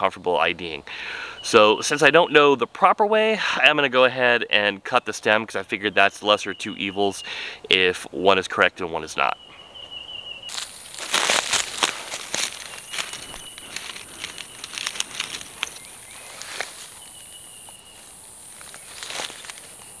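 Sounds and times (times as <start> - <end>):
dry leaves crackling and rustling: 10.5 - 20.0
high insect buzz: 10.5 - 20.0.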